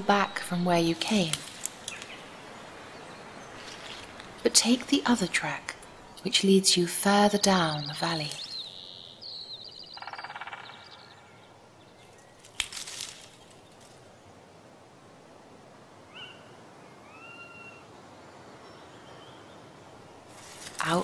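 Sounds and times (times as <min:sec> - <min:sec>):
faint steady hiss: 0:00.0 - 0:10.0, 0:11.0 - 0:21.0
birds chirping trill: 0:01.8 - 0:12.5.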